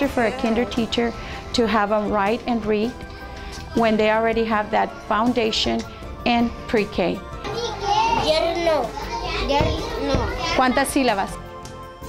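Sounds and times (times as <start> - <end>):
young children speaking: 7.4 - 11.3.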